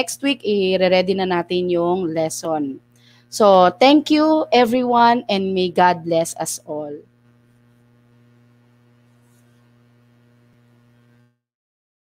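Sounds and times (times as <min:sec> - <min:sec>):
faint electrical mains hum: 0:00.0 - 0:11.4.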